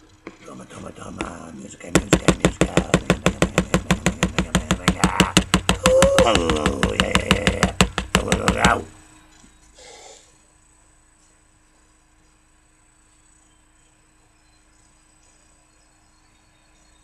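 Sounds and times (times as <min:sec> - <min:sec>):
fast percussion beat: 0:01.2 - 0:08.9.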